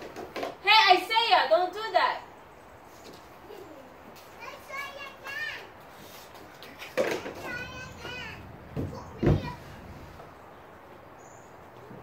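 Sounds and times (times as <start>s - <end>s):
faint children's voices: 3.1s - 10.4s.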